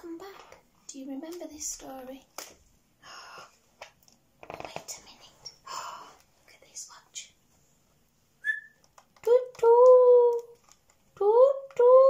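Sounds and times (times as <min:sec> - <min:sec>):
person whispering: 0:04.6 - 0:05.7, 0:06.4 - 0:07.4
person whistling owl-like hoot: 0:08.4 - 0:08.8.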